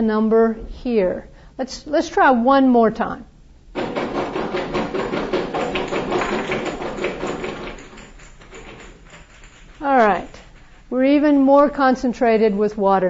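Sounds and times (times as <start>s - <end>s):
small balls rattling in container: 3.8s - 10.8s.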